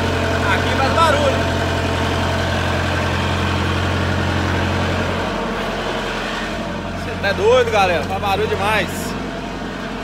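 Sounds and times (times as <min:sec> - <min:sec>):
refrigeration unit engine drone: 0:00.0 - 0:10.0.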